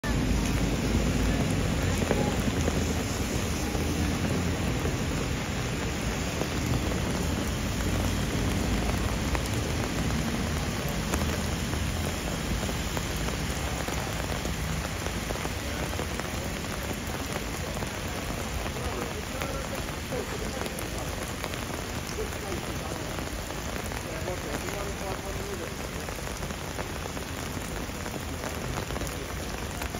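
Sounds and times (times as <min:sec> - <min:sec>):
heavy rain on paving: 0:00.0 - 0:29.9.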